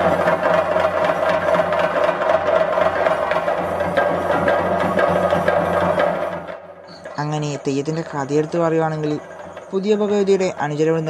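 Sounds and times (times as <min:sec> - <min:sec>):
drums beaten fast with sticks: 0:00.0 - 0:11.0.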